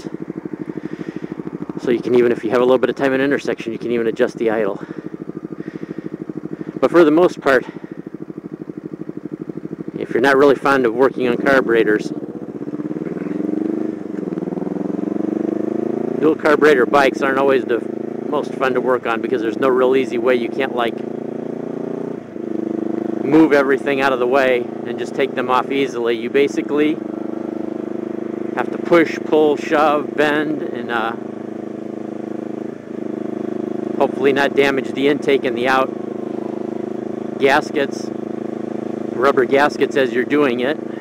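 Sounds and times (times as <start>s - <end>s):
motorcycle engine accelerating: 0.0s - 41.0s.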